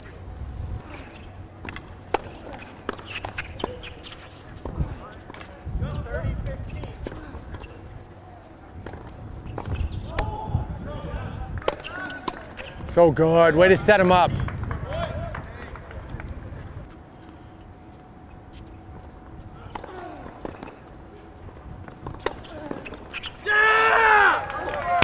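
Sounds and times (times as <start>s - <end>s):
tennis balls bouncing and struck: 0.9s - 5.6s, 8.5s - 10.3s, 11.5s - 13.0s, 18.6s - 23.4s.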